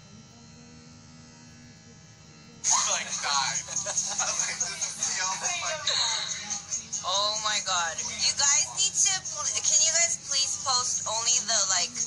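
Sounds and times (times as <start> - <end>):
low hum with buzz: 0.0 - 12.0
laughter: 2.7 - 5.4.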